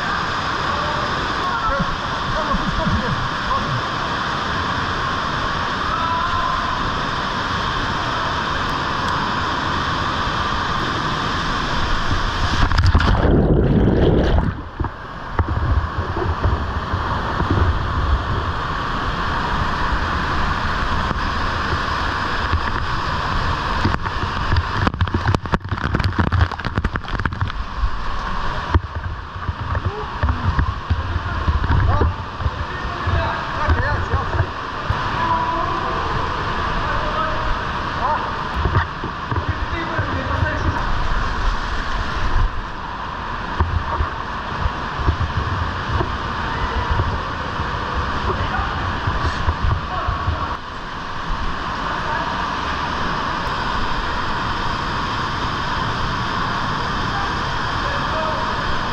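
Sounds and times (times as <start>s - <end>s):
churning water gurgling: 0.0s - 58.9s
waterfall rushing: 0.0s - 58.9s.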